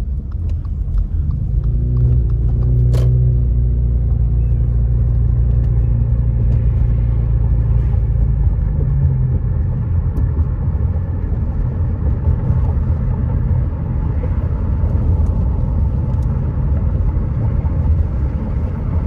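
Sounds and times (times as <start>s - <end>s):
car engine and tyre noise: 0.0s - 19.0s.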